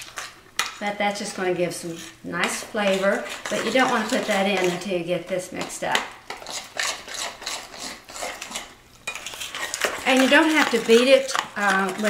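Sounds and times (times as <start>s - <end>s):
utensil scraping glass bowl: 0.0s - 4.9s, 6.3s - 12.0s.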